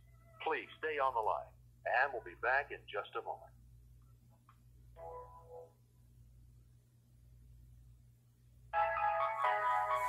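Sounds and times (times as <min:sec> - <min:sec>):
faint hum: 0:00.0 - 0:09.6
telephone hold music: 0:08.7 - 0:10.0.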